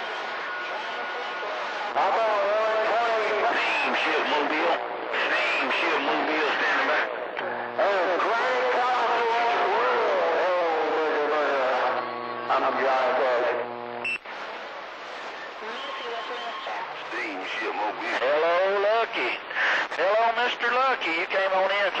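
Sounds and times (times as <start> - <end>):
garbled radio voices: 0.3 - 13.9, 15.3 - 22.0
steady buzzing tone: 7.1 - 8.7, 11.8 - 14.4.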